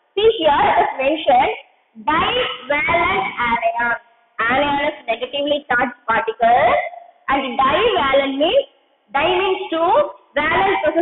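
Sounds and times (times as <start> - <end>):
woman speaking: 0.2 - 11.0.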